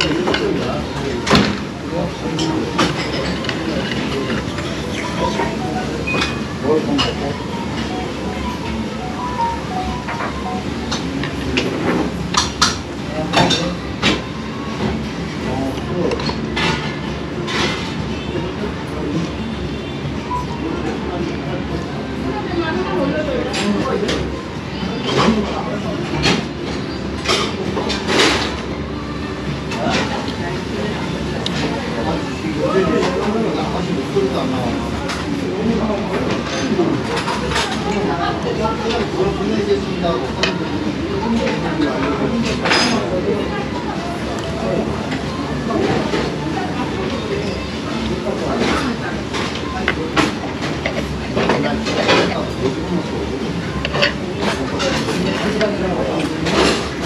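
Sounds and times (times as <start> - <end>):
background chatter: 0.0 - 57.0
restaurant voices: 0.0 - 57.0.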